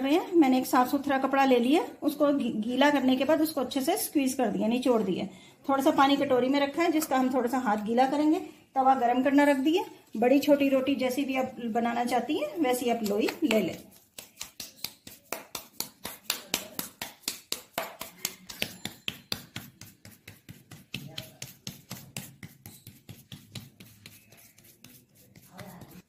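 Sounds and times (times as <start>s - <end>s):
hands patting dough: 12.0s - 26.0s.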